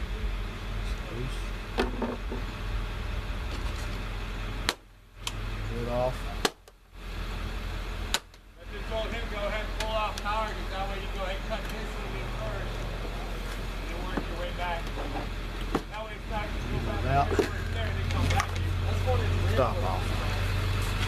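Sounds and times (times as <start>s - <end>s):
vehicle engine rumble: 0.0s - 21.0s.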